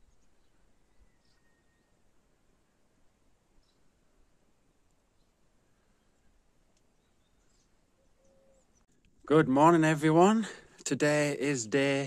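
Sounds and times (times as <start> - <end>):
faint bird chirps: 0.0 - 4.3, 4.9 - 9.0.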